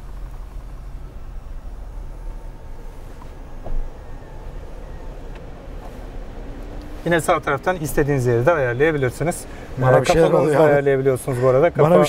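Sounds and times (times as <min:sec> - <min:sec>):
steady low rumble: 0:00.0 - 0:11.9.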